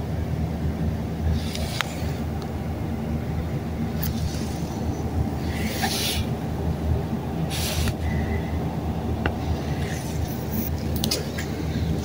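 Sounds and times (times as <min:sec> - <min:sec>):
elevator cab rumbling: 0:00.0 - 0:12.0.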